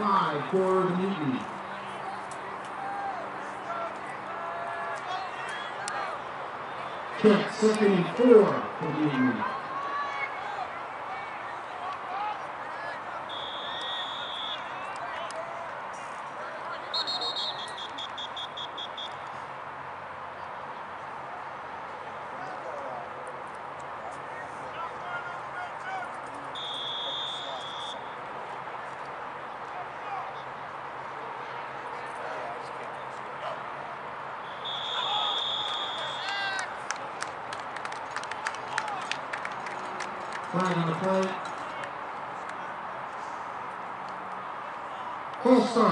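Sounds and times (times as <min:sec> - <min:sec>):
crowd voices murmuring: 0:00.0 - 0:18.5, 0:19.2 - 0:45.9
referee's whistle blasts: 0:13.3 - 0:14.8, 0:16.9 - 0:19.2, 0:26.5 - 0:28.2, 0:34.4 - 0:36.3.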